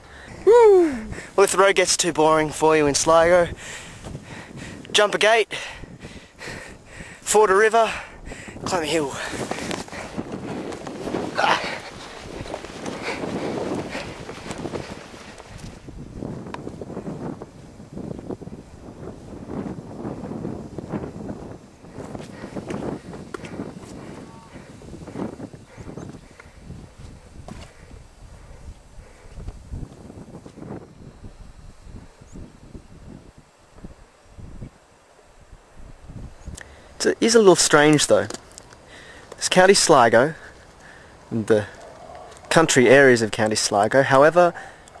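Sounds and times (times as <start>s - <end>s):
wind on microphone: 0.0s - 37.0s
rustling of grass: 8.5s - 45.0s
footsteps in long grass: 9.0s - 30.9s.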